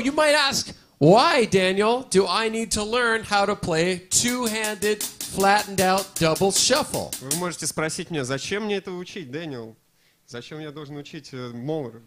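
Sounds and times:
person talking: 0.0s - 8.3s.

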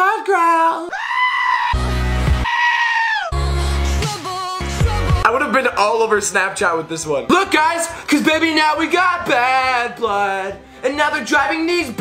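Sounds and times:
goat screaming: 0.9s - 1.8s, 2.4s - 3.4s.

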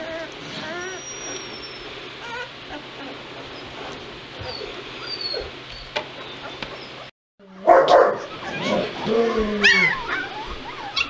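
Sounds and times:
puppies squeaking and whimpering: 0.0s - 7.1s, 8.2s - 11.0s.

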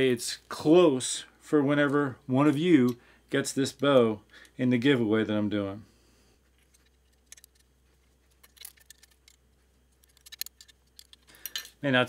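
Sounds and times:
metallic clicks of wrench: 8.3s - 9.4s, 10.0s - 11.8s.

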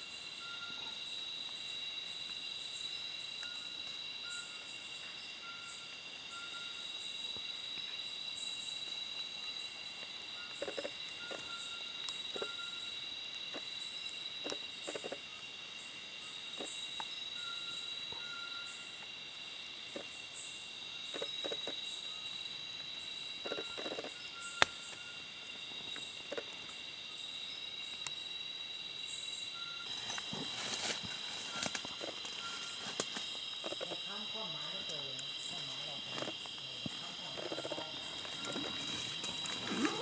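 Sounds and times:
insect trills: 0.0s - 40.0s
pulsed insect call: 0.0s - 40.0s.

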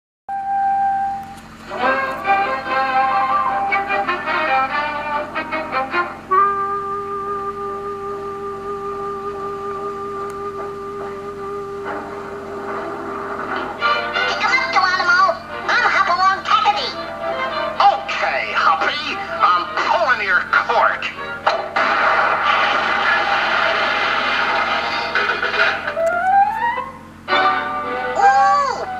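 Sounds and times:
cartoon music from television speaker: 1.6s - 6.5s, 11.9s - 28.9s.

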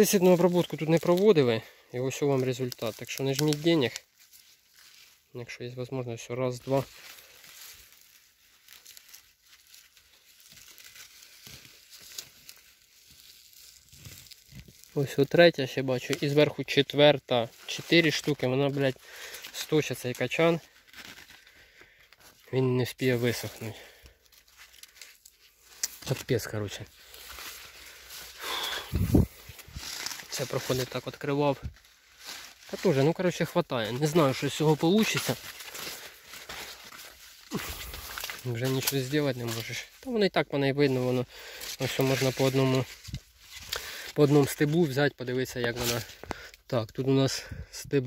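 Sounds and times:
husk leaves crinkling and tearing: 0.0s - 47.5s
small crackles: 0.0s - 47.5s.

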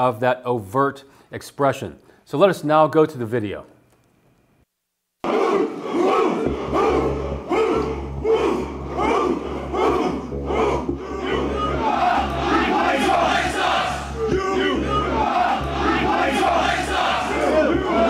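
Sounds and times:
crowd of men chanting: 5.2s - 18.0s.

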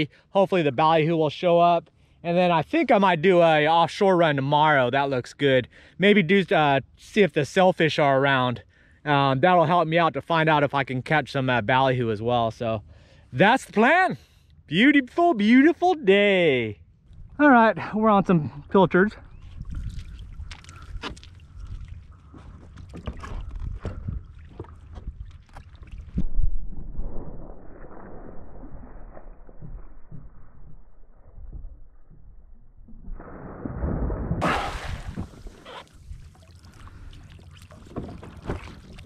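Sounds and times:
water sloshing and splashing: 19.4s - 28.2s, 33.0s - 39.0s.

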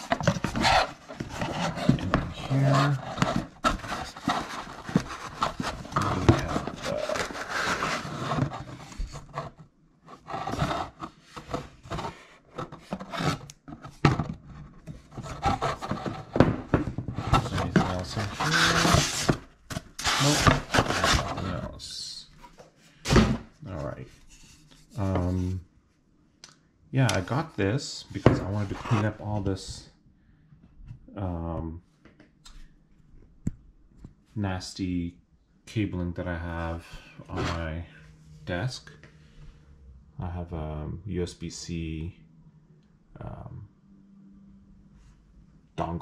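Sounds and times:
foam and cardboard rustling: 0.0s - 9.6s, 10.2s - 21.7s
metal scraping: 17.2s - 19.4s.

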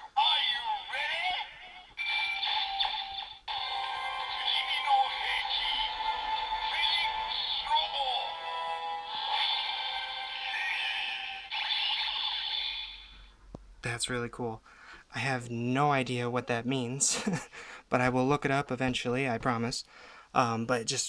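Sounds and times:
synthesized voice call-outs: 0.0s - 12.8s
toy electronic music: 0.2s - 13.3s.

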